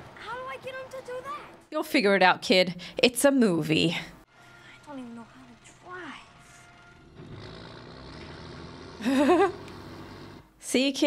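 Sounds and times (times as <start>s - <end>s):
car engine running: 4.9s - 10.6s.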